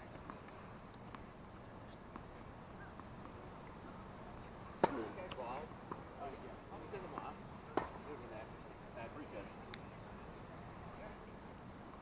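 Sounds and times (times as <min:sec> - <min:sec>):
faint distant voices: 0:01.5 - 0:12.0
tennis racket hitting ball: 0:04.8 - 0:05.2, 0:07.7 - 0:08.0.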